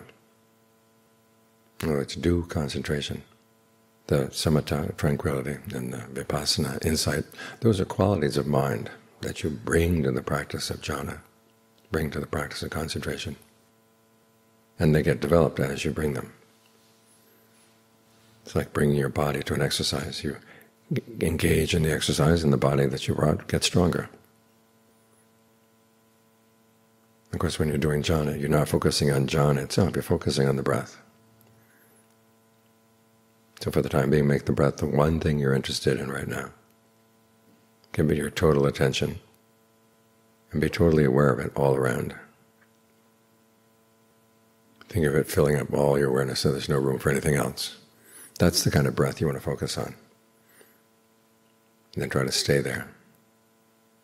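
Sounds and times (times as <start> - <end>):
faint electrical hum: 0.0 - 54.0
man speaking: 1.8 - 3.4, 4.1 - 11.3, 11.9 - 13.5, 14.8 - 16.4, 18.4 - 24.2, 27.3 - 31.1, 33.6 - 36.6, 37.9 - 39.3, 40.5 - 42.4, 44.8 - 50.1, 51.9 - 53.0.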